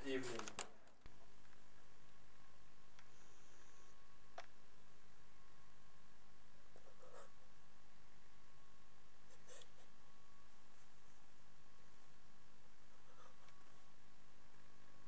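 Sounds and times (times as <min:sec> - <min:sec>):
rustling: 0:00.0 - 0:02.0
camcorder hiss: 0:00.0 - 0:15.0
faint hum: 0:00.0 - 0:15.0.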